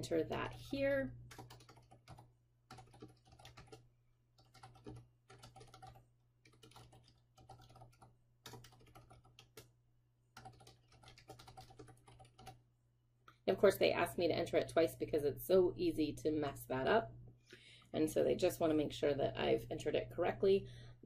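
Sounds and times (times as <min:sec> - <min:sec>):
typing on computer keyboard: 0:00.3 - 0:03.8, 0:04.4 - 0:09.7, 0:10.4 - 0:12.6.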